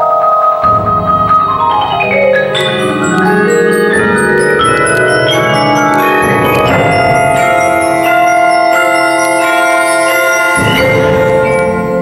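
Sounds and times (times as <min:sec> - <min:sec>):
mallet percussion ensemble: 0:00.0 - 0:12.0.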